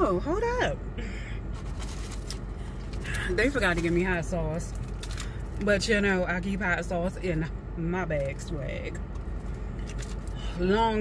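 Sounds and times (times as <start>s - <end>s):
car air conditioning hum: 0.0s - 11.0s
food packaging rustling: 1.6s - 4.1s, 4.7s - 5.6s.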